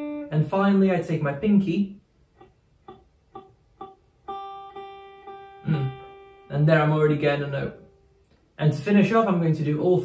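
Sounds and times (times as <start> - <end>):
electric guitar string plucked: 0.0 - 0.5, 2.3 - 8.4.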